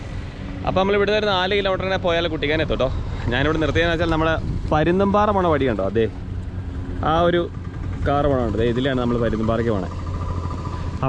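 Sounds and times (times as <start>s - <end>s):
steady low hum: 0.0s - 11.0s
man talking: 0.6s - 6.2s, 7.0s - 10.0s.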